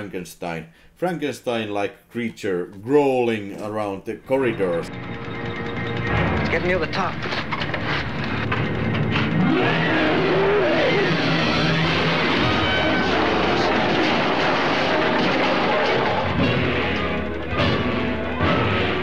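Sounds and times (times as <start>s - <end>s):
dense orchestral film score: 4.4s - 19.0s.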